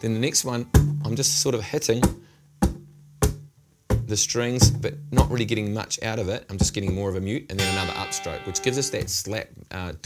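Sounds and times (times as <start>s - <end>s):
acoustic guitar muted strums: 7.6s - 9.1s
low bass note ringing: 7.6s - 9.1s.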